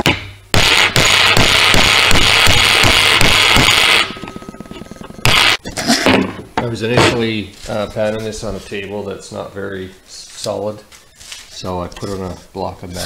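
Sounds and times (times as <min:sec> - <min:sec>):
thin ringing tone: 0:03.8 - 0:05.2.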